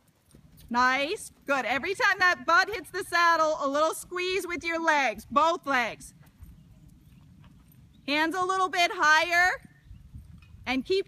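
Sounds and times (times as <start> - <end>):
faint hoofbeats: 0.0 - 11.0.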